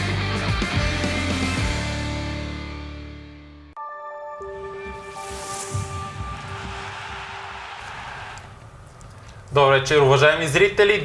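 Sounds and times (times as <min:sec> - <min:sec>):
whoosh of noise: 0:04.9 - 0:08.8.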